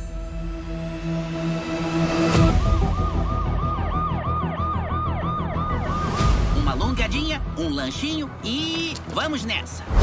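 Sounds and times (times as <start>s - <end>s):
siren yelping: 2.8s - 6.7s.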